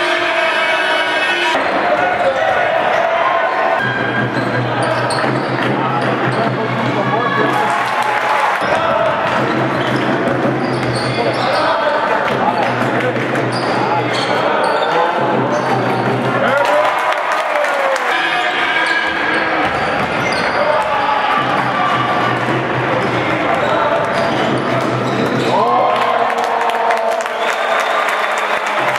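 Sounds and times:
murmur of voices: 0.0 - 28.9.

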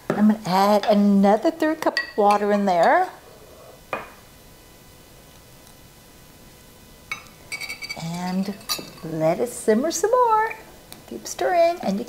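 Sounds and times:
metal clinking against saucepan: 7.1 - 9.1.

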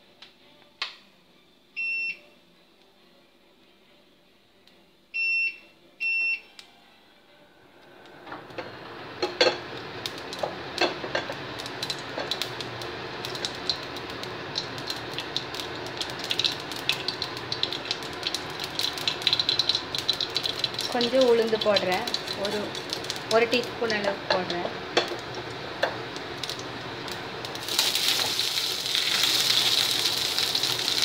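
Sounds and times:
hot oil sizzling in a pan: 9.2 - 31.0
seeds crackling and popping: 11.6 - 24.6, 26.4 - 31.0.

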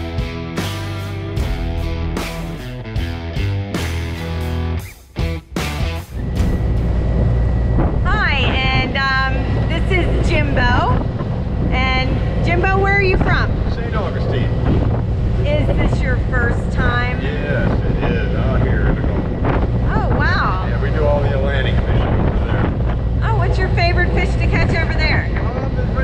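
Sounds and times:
boat engine rumble: 0.0 - 26.0
wind buffeting microphone: 6.2 - 26.0
man talking: 13.7 - 14.7, 17.2 - 19.3, 20.7 - 22.7, 25.4 - 26.0.

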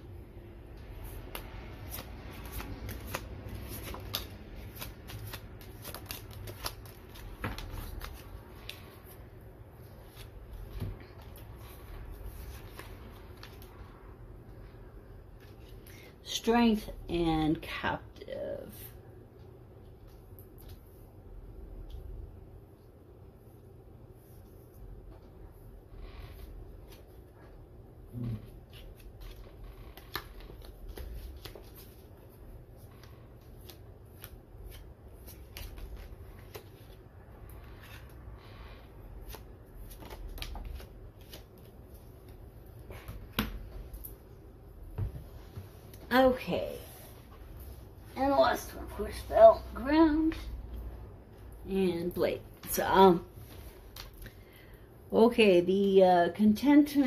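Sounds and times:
cards being shuffled: 0.9 - 9.2, 28.4 - 38.2, 39.2 - 44.2.

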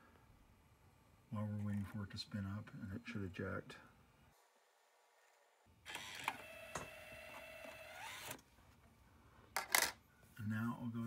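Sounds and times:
disc drive motor whining: 5.9 - 8.4.

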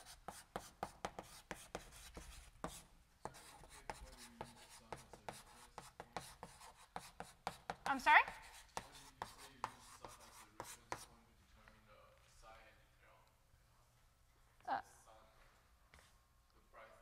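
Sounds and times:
chalk tapping and scratching: 0.0 - 11.2.

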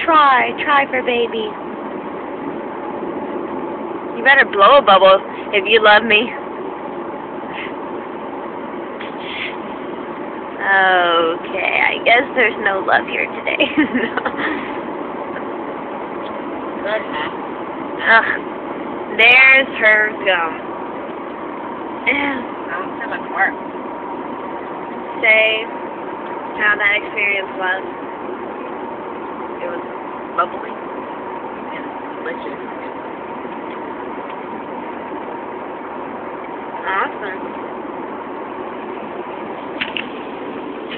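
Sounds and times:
car cabin noise: 0.0 - 40.9
faint hum: 0.0 - 40.9.

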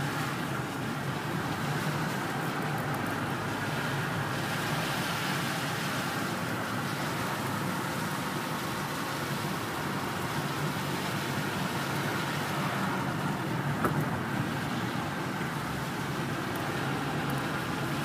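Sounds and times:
engine and road noise: 0.0 - 18.0.

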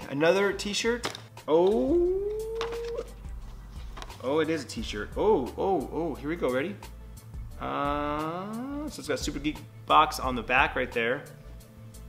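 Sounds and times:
man's rising ooh: 1.8 - 3.1, 8.0 - 8.9.

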